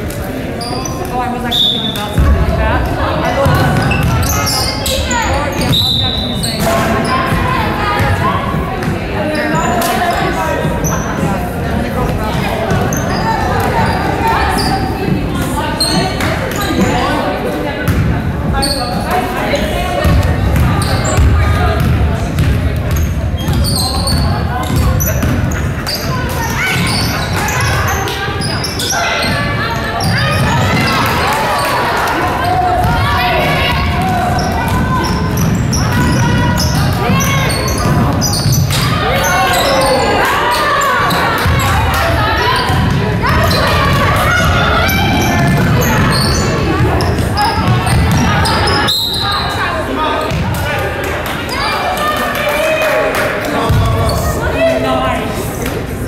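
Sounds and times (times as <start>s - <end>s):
players calling out: 0.0s - 56.0s.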